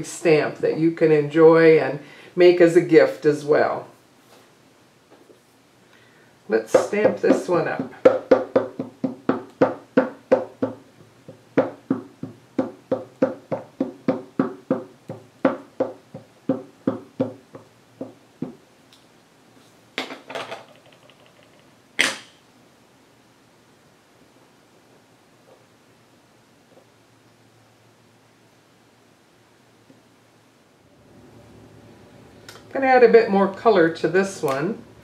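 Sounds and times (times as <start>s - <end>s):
ink pad tapping rubber stamp: 6.7s - 18.6s
stamp knocked down: 22.0s - 22.4s.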